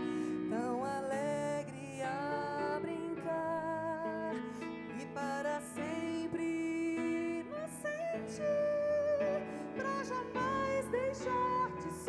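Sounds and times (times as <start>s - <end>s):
classical guitar plucking: 0.0s - 12.0s
held melody with vibrato: 0.0s - 12.0s.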